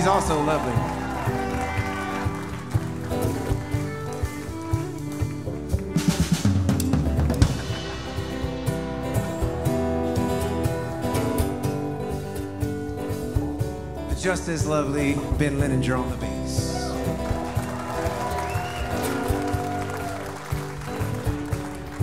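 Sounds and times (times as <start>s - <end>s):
small band playing a groove: 0.0s - 22.0s
drum kit hits and fills: 5.4s - 21.9s.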